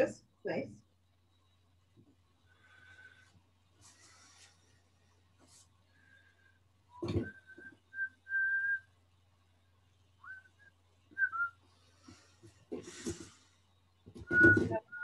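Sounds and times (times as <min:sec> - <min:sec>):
faint electrical hum: 0:00.0 - 0:15.0
person whistling: 0:07.0 - 0:08.8, 0:14.3 - 0:15.0.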